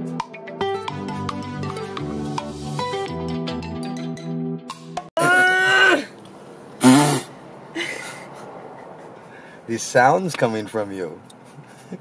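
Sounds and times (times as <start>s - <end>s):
plucked background music: 0.0s - 5.1s
person making drawn-out vocal sound: 5.2s - 6.1s.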